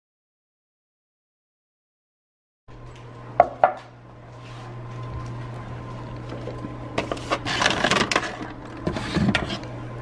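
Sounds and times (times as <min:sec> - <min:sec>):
steady low hum: 0:02.7 - 0:10.0.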